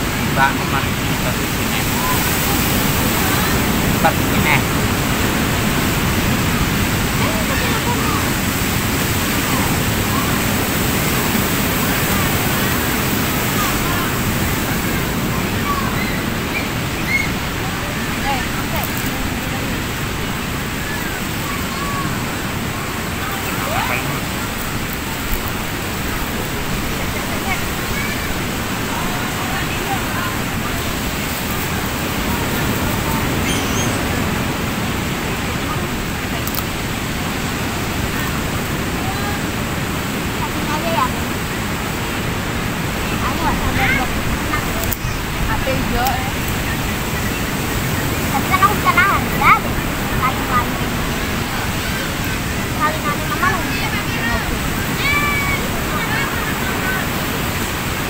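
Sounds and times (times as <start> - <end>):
indistinct voices talking: 0.0 - 58.0
ocean surf rushing: 0.0 - 58.0.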